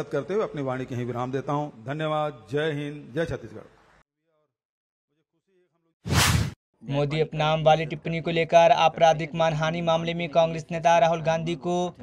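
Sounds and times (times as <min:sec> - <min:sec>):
short whoosh: 0:06.1 - 0:06.6.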